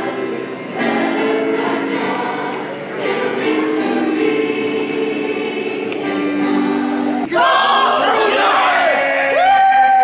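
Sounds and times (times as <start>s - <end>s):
choir singing in harmony: 0.0s - 9.4s.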